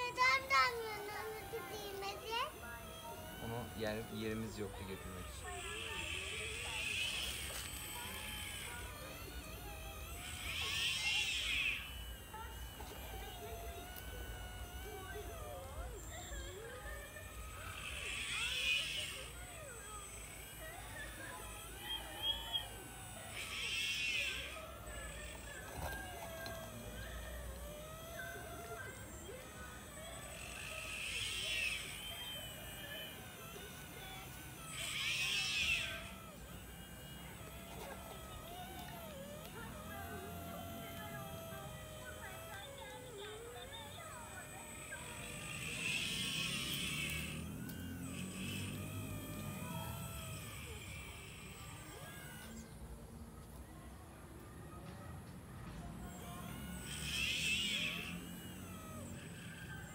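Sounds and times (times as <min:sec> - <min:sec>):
small electric motors whining: 0:00.0 - 0:59.9.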